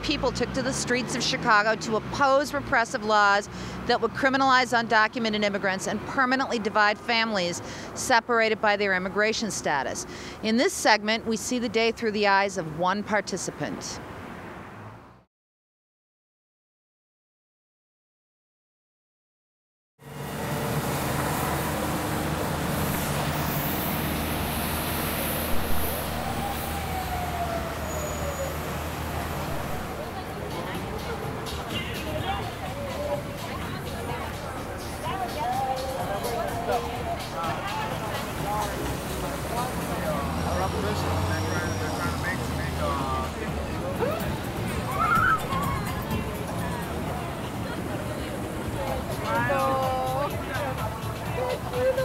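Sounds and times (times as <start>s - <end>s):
people talking: 0.0s - 14.0s, 29.9s - 44.4s, 45.2s - 52.0s
street traffic rushing: 0.0s - 15.3s, 20.0s - 52.0s
vehicle engine rumble: 20.0s - 52.0s.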